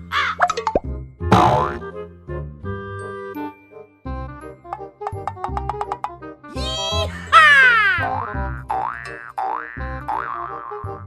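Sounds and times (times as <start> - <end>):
background music: 0.0 - 11.0
cartoon boing twang: 1.3 - 1.8.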